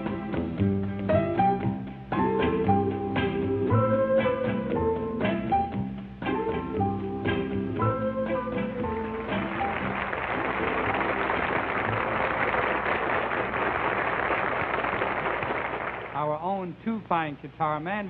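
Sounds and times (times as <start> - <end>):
piano-led band playing: 0.0 - 13.6
audience applauding: 9.2 - 16.2.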